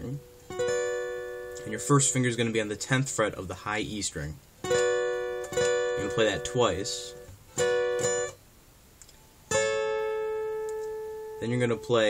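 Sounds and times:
acoustic guitar chord strums: 0:00.0 - 0:12.0.

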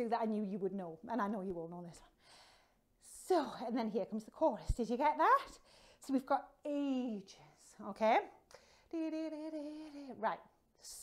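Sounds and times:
woman speaking: 0:00.0 - 0:02.1, 0:03.0 - 0:11.0.

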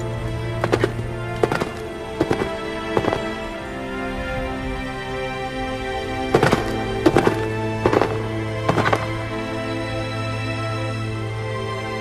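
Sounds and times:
background music: 0:00.0 - 0:12.0
horse hooves clip-clopping: 0:00.6 - 0:03.4, 0:06.3 - 0:09.2.

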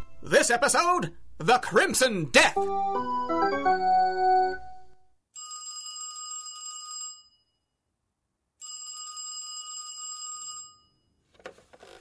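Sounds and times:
telephone bell ringing: 0:05.4 - 0:07.6, 0:08.6 - 0:11.1.

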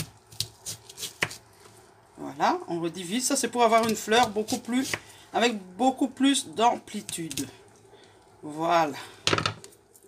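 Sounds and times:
knife cutting onion on plastic board: 0:00.0 - 0:01.7, 0:03.5 - 0:05.2.

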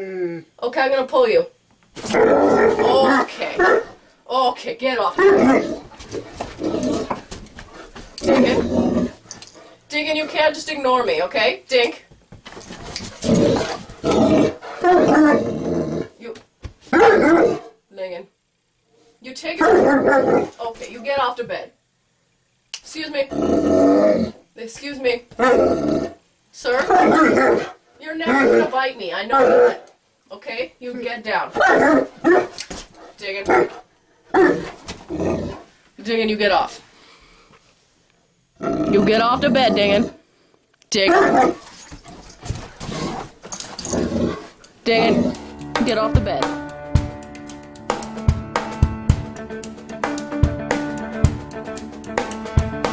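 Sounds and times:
dog growling and grumbling: 0:02.0 - 0:04.0, 0:05.1 - 0:09.8, 0:13.0 - 0:16.2, 0:16.9 - 0:17.7, 0:19.6 - 0:20.6, 0:23.3 - 0:24.4, 0:25.4 - 0:29.9, 0:31.5 - 0:35.7, 0:38.6 - 0:40.2, 0:41.0 - 0:46.4.

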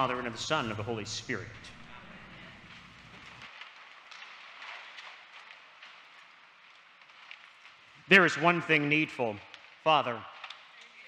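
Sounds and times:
soft rustles or ticks: 0:02.7 - 0:08.2.

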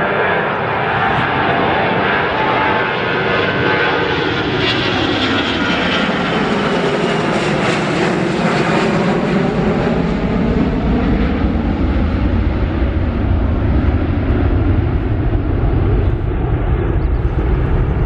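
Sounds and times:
jet engine roar overhead: 0:00.0 - 0:18.0
deep rumble: 0:09.6 - 0:18.0.

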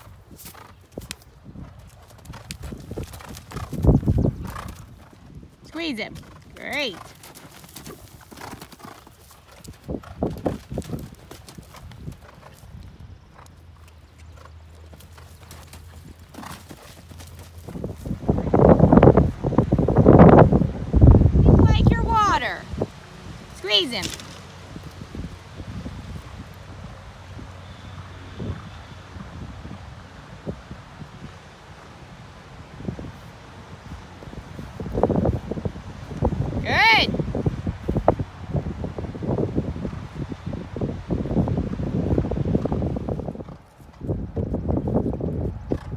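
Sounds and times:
wind on microphone: 0:00.0 - 0:07.2, 0:07.8 - 0:13.4, 0:15.8 - 0:45.9
horse hoofbeats cantering: 0:00.0 - 0:20.2, 0:41.0 - 0:45.9.

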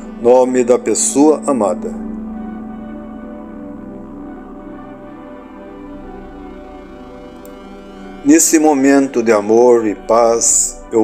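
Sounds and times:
ambient music drone: 0:00.0 - 0:11.0.

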